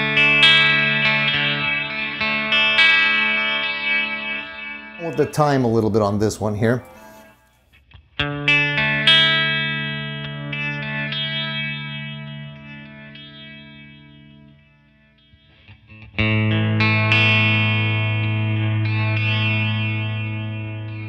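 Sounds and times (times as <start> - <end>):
electric guitar chords with delay: 0.0 - 7.4, 8.0 - 21.0.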